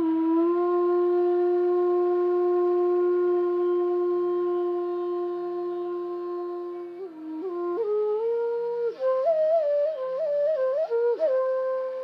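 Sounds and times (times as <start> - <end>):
bamboo flute holding a note: 0.0 - 12.0.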